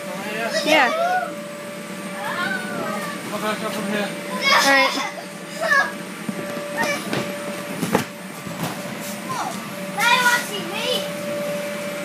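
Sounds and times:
air blower humming: 0:00.0 - 0:12.0
children shouting and crying: 0:02.1 - 0:03.3
thumps in bounce house: 0:06.2 - 0:09.7.

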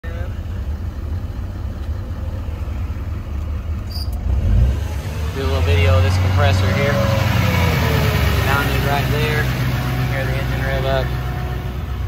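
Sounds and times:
pickup engine idling: 0:00.0 - 0:12.0.

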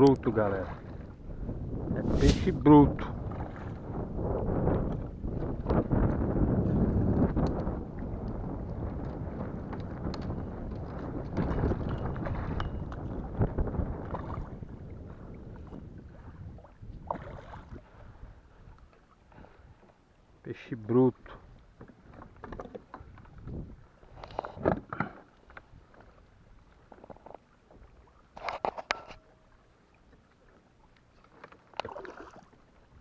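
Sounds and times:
wind rumbling on microphone: 0:00.0 - 0:19.9, 0:21.1 - 0:27.1
water splashing: 0:02.0 - 0:02.7, 0:16.6 - 0:18.0, 0:29.0 - 0:32.9.

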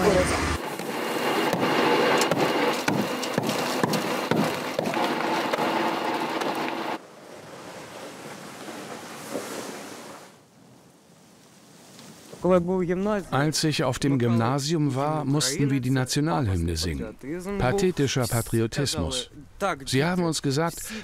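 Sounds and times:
hammers chipping wall: 0:01.4 - 0:06.8.

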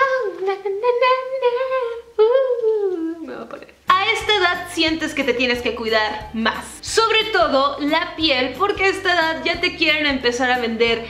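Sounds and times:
woman humming: 0:00.0 - 0:03.7.

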